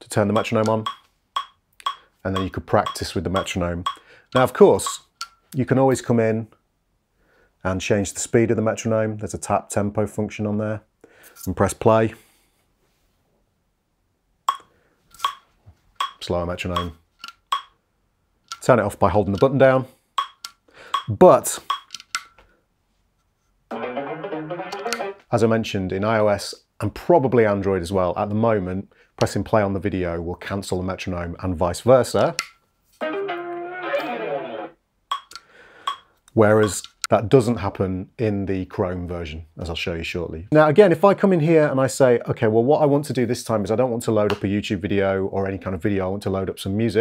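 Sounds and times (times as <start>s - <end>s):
metronome clicks: 0.4s - 5.4s, 20.2s - 22.3s, 24.7s - 25.1s
guitar notes: 23.7s - 25.3s, 33.0s - 34.8s.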